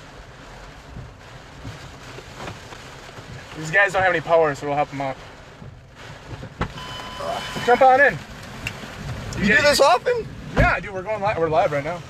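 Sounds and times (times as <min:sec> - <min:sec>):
rain on a vehicle: 0:00.0 - 0:12.0.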